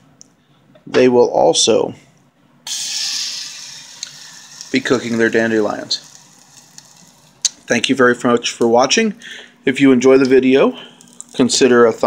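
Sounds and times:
flower frying in hot oil: 2.7 - 7.9.

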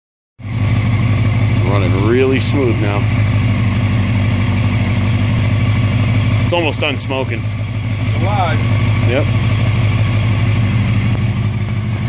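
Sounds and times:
motorcycle engine idling: 0.4 - 12.0.

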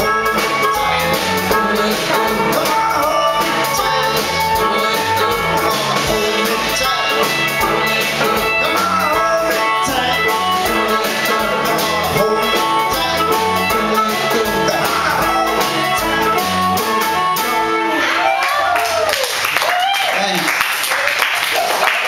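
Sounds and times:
drum kit: 0.0 - 19.1
electric guitars: 0.0 - 19.1.

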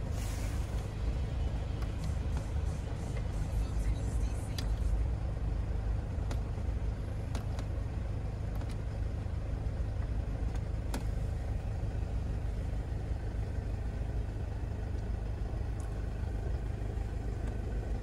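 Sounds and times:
car engine idling low rumble: 0.0 - 18.0
dashboard control clicks: 1.7 - 3.3, 4.3 - 4.9, 6.1 - 6.6, 7.2 - 7.8, 8.5 - 8.8, 10.5 - 11.2.

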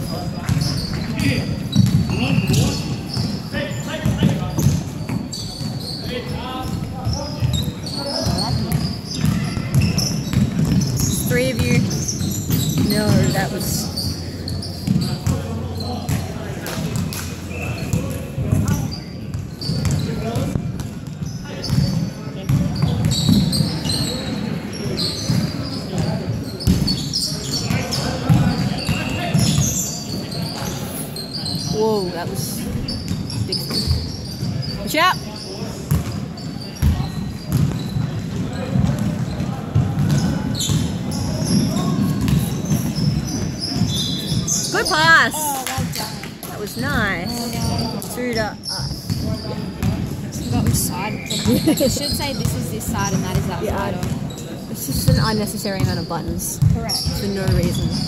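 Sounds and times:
ball bouncing on wooden court: 0.4 - 3.4, 6.6 - 14.2, 14.8 - 15.5, 17.9 - 24.1, 25.3 - 27.0, 36.8 - 47.8, 48.8 - 54.3, 55.0 - 58.0.

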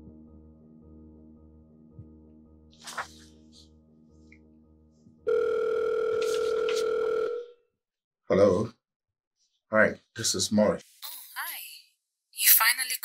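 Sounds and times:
telephone tone: 5.3 - 7.6
person speaking on phone: 6.1 - 7.0.

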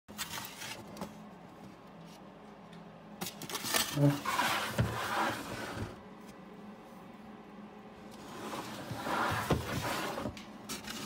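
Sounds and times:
low steady hum: 0.1 - 11.0.

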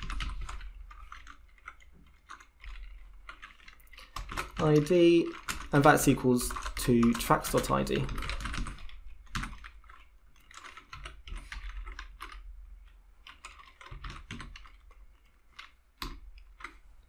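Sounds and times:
typing on a keyboard: 0.0 - 17.0.

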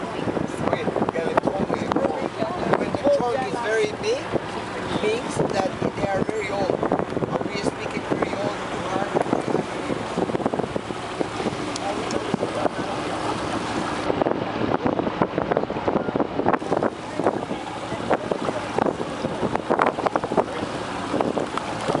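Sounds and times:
water splashing around boat: 0.0 - 22.0
wind buffeting microphone: 0.0 - 22.0.

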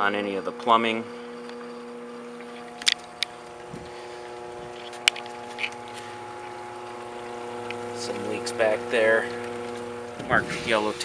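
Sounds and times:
pump motor humming: 0.0 - 11.0.

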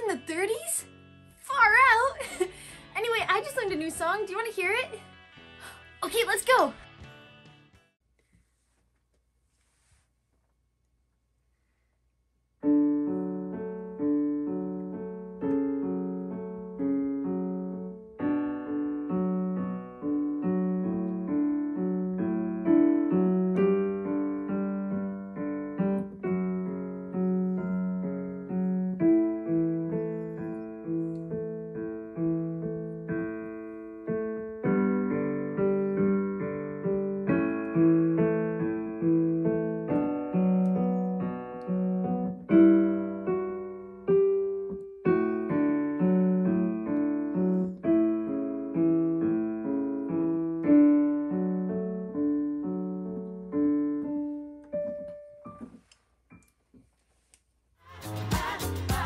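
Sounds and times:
digital piano melody: 0.0 - 5.0, 12.6 - 56.7.

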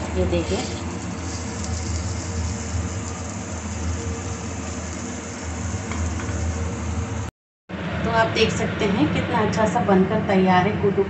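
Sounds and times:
food sizzling in a pan: 0.0 - 7.3.

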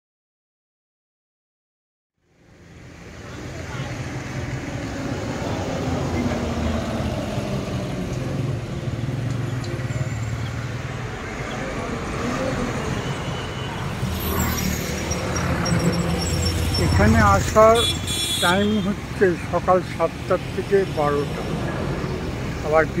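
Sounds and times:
road traffic rumble: 2.2 - 23.0.

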